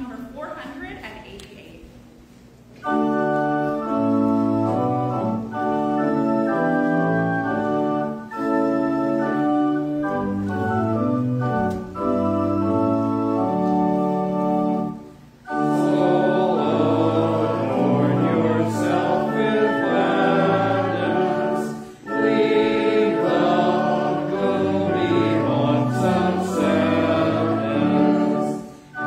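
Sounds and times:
church organ playing hymn: 0:02.6 - 0:29.0.

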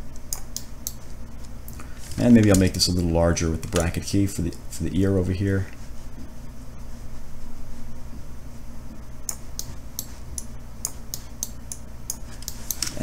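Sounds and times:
faint electrical hum: 0:00.0 - 0:13.0.

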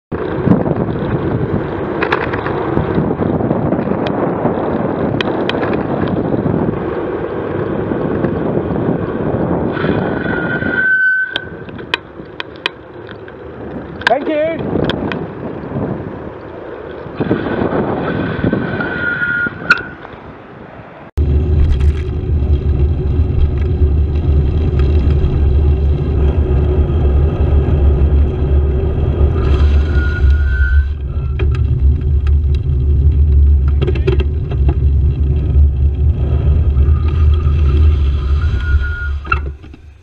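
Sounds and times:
road and traffic noise: 0:00.1 - 0:40.0
wind buffeting microphone: 0:00.1 - 0:40.0.

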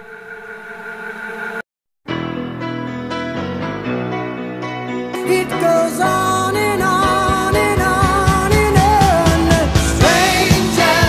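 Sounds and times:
sustained synthesizer chord: 0:00.0 - 0:01.6.

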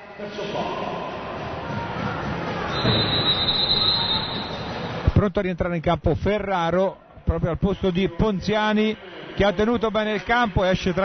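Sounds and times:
shrill whistle: 0:02.7 - 0:04.8.

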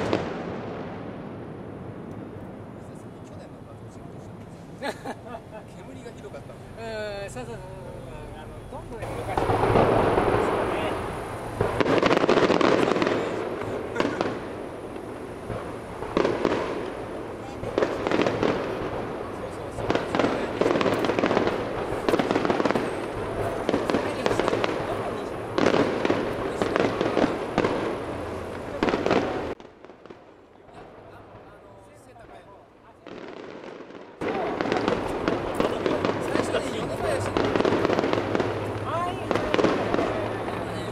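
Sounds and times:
fireworks booming and crackling: 0:00.0 - 0:40.9.

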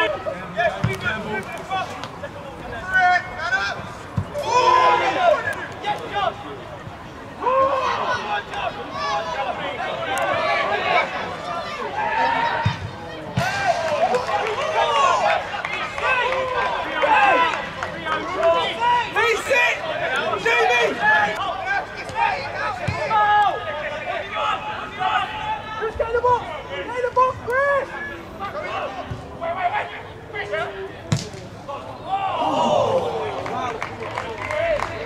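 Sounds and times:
football kicked thud: 0:31.1 - 0:31.4.

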